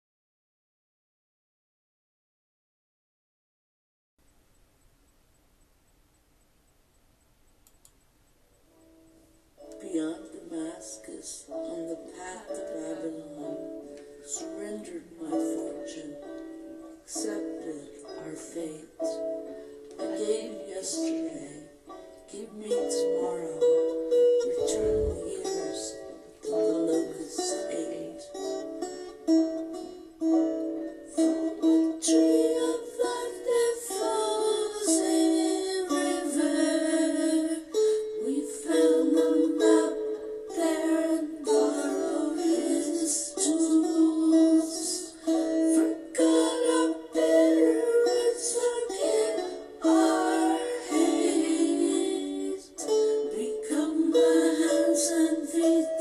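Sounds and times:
plucked string instrument: 9.6 - 56.0.

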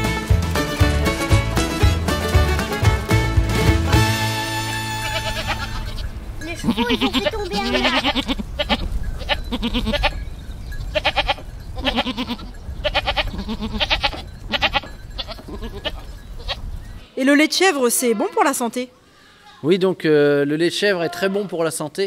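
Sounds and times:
goats bleating: 3.8 - 10.2, 10.8 - 16.6.

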